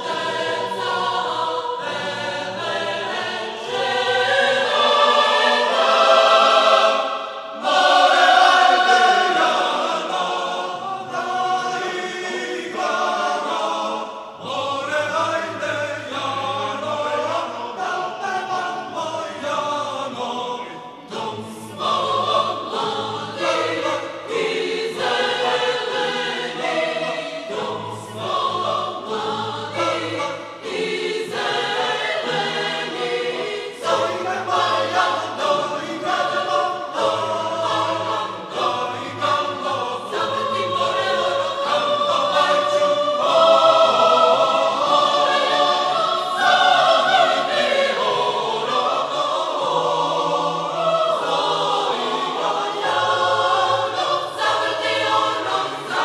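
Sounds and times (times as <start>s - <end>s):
choir singing folk dance: 0.0s - 56.0s.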